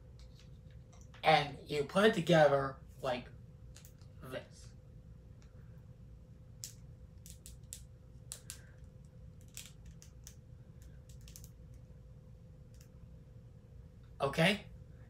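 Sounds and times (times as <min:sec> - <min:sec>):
plastic parts clicking: 0:06.6 - 0:11.6.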